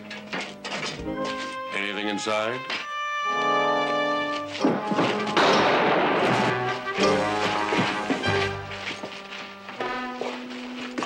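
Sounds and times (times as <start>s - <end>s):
dramatic orchestral music: 0.0s - 11.0s
crashing and thumps: 4.5s - 9.0s.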